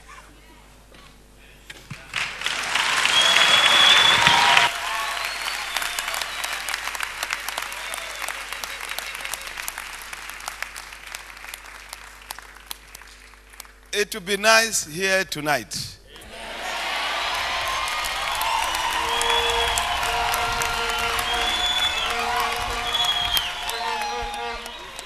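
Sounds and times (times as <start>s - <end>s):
congregation clapping: 2.1s - 15.9s, 17.3s - 25.0s.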